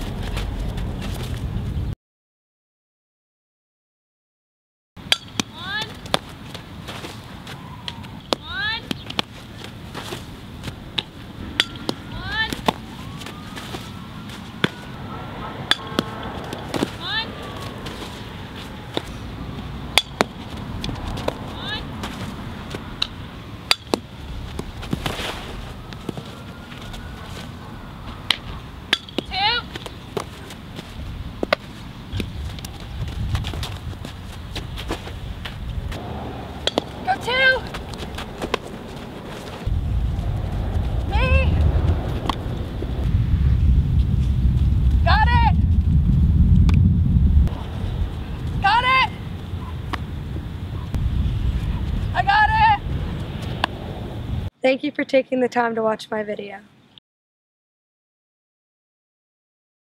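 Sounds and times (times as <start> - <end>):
outdoor background noise: 0.0 - 2.0, 5.0 - 57.0.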